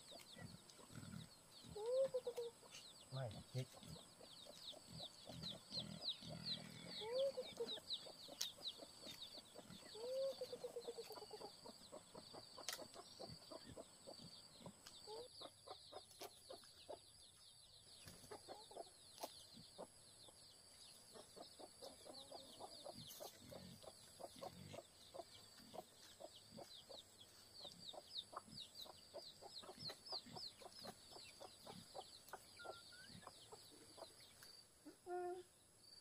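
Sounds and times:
chickens clucking: 0.0s - 17.1s, 18.0s - 35.3s.

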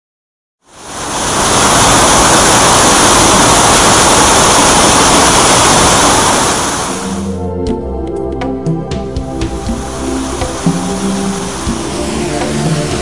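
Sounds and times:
waterfall rushing: 0.7s - 7.4s, 9.8s - 13.0s.

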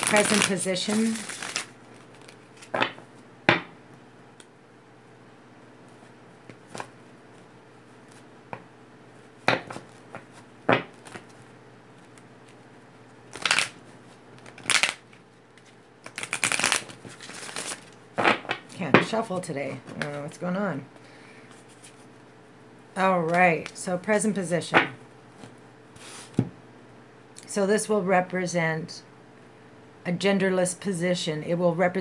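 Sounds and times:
cards being shuffled by hand: 0.0s - 3.2s, 5.8s - 8.3s, 9.6s - 12.7s, 13.3s - 20.4s, 21.5s - 22.3s, 25.3s - 26.5s.

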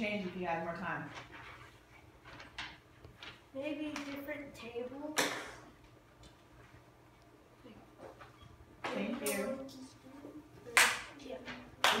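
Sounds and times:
audience clapping: 11.8s - 12.0s.

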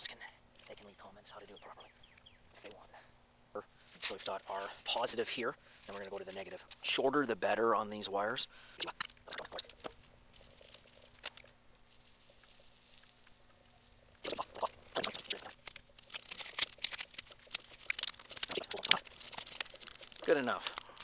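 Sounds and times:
faint steady hum: 0.0s - 21.0s
duct tape ripping off roll: 8.9s - 21.0s.

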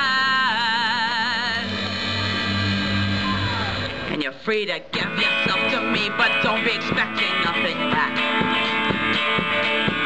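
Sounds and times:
strummed guitar: 4.9s - 10.0s
steady drum beat: 5.0s - 10.0s.

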